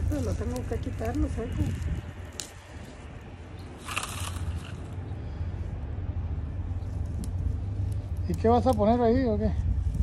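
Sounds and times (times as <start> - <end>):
dry stems rustling and crackling: 0.0 - 5.6, 6.5 - 10.0.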